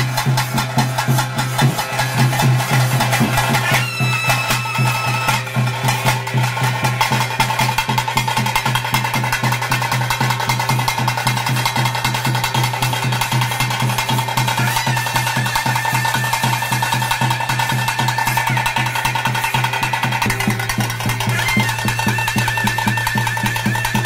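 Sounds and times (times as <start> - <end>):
fast ritual drumming with sticks: 0.0 - 24.0
higher held note: 20.2 - 24.0.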